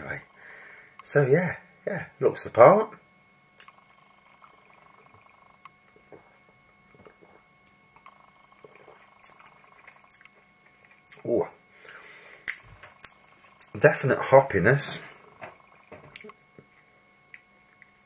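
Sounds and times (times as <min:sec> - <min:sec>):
faint steady hum: 0:00.0 - 0:18.0.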